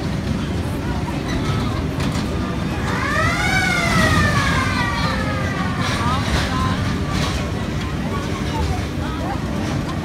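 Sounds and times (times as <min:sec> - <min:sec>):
siren wailing: 0:02.8 - 0:05.8.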